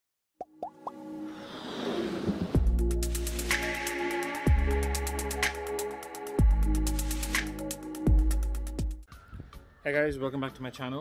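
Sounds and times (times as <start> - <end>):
musical build-up: 0.8 - 9.1.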